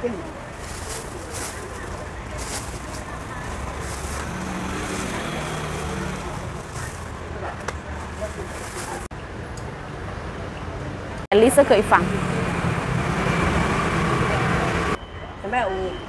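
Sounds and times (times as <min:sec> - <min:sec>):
street noise: 0:00.0 - 0:16.0
plastic bag crinkling: 0:00.5 - 0:07.1, 0:08.0 - 0:09.1
motor vehicle passing: 0:00.8 - 0:09.1, 0:11.4 - 0:15.0.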